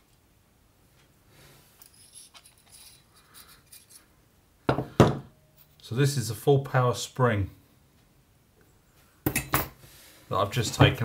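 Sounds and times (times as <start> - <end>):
metal parts rustling and scraping: 1.6 - 4.2.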